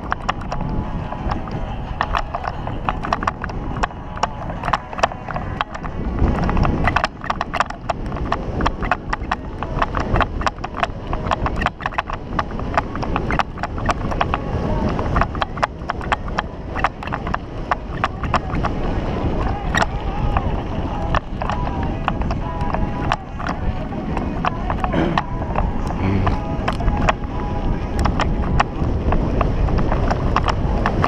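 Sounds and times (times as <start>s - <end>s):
bicycle rattling over bumps: 0.0s - 31.0s
wind on microphone: 0.0s - 31.0s.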